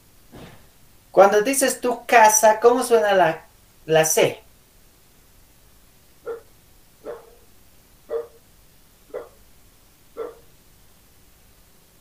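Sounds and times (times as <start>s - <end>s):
dog barking: 6.2s - 7.5s, 8.1s - 8.4s, 9.1s - 9.4s, 10.2s - 10.5s.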